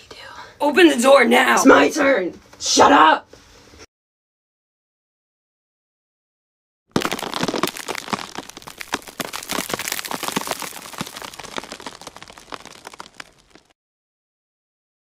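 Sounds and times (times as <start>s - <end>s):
stiff coat crackling and crinkling: 6.9s - 13.8s.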